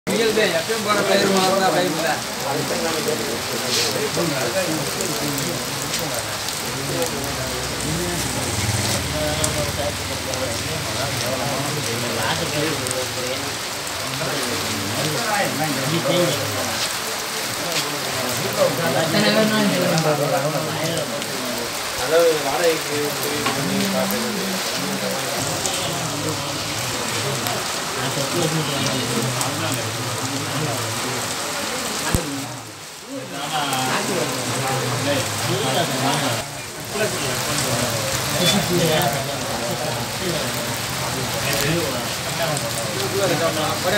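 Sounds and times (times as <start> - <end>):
faint low voices: 0.1 - 43.9
people talking: 0.1 - 43.9
rain falling on wet street: 0.1 - 43.9.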